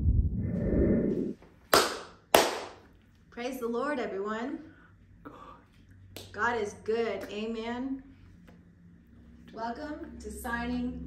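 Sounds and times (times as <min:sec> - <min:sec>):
low rumble: 0:00.0 - 0:01.4
sharp hand claps: 0:01.7 - 0:02.9.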